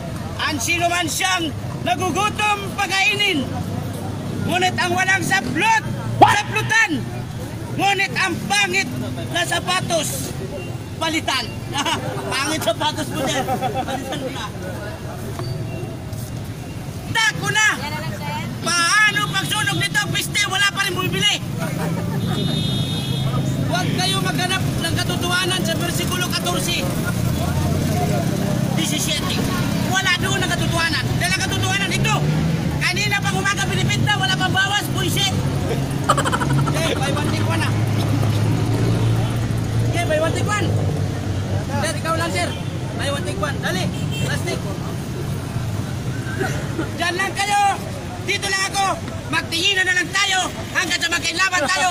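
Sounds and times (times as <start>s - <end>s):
crowd chatter: 0.0s - 51.9s
road traffic rumble: 0.0s - 51.9s
man's voice: 17.0s - 22.2s, 23.3s - 39.0s, 46.4s - 51.9s.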